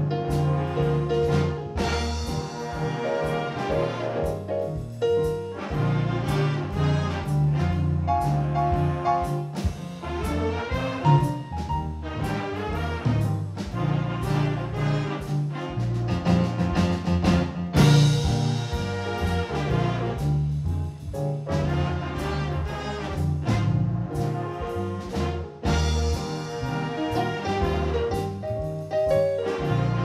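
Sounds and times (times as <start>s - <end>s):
jazz big band playing blues: 0.0s - 30.0s.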